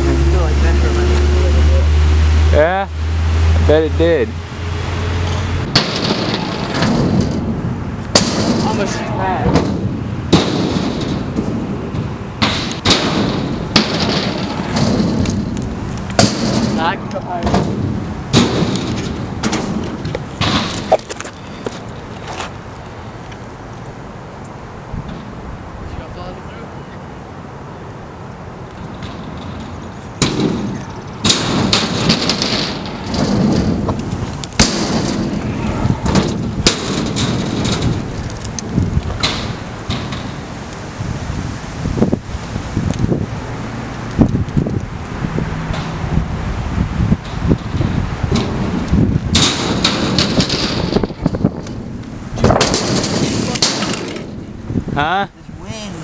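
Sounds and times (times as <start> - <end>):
scooter wheels rolling on concrete: 5.1 - 12.8, 13.4 - 26.5, 28.0 - 54.8
wind on microphone: 28.4 - 56.0.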